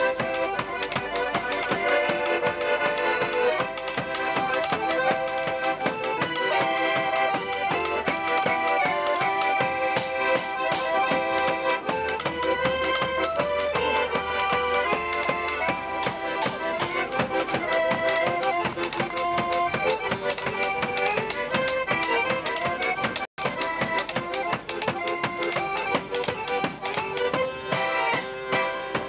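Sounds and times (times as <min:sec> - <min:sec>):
accordion melody: 0:00.0 - 0:29.0
hand drum struck with beater: 0:03.2 - 0:27.8.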